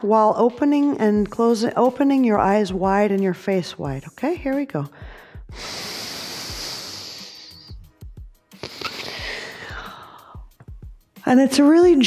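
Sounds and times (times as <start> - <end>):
person breathing through mouth: 4.9 - 10.6.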